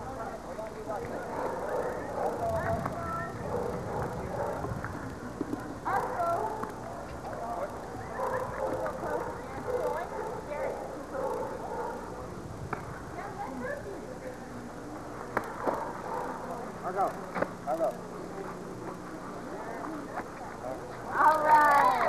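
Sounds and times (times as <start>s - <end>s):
people talking indistinctly: 0.0s - 22.0s
dog noises: 1.2s - 5.0s, 5.8s - 12.2s, 15.5s - 16.7s.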